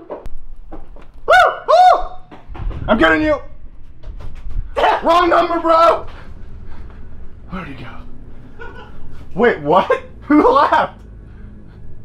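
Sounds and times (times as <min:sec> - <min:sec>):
person hooting calls: 0:01.3 - 0:02.2.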